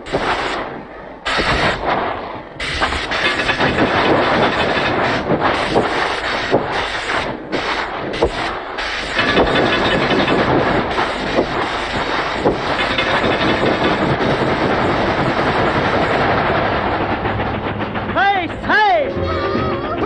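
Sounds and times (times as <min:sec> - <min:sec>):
steam train clattering on rails: 0:00.0 - 0:20.0.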